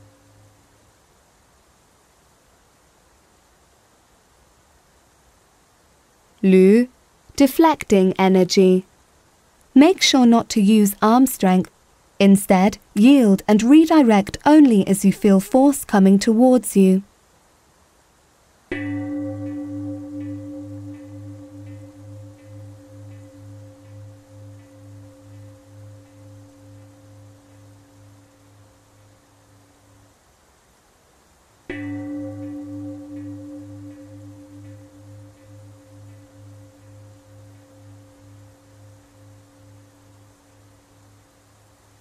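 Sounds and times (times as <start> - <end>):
struck bell ringing: 31.7 - 41.0.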